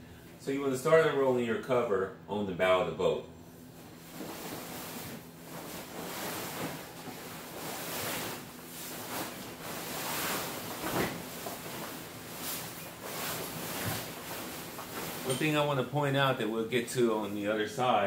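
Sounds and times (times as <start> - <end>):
fabric cover rustling and swishing: 3.6 - 15.8.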